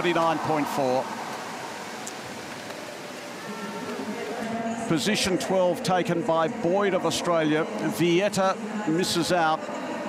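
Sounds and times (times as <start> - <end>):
indoor pool ambience hiss: 0.0 - 5.5
faint voices: 0.0 - 10.0.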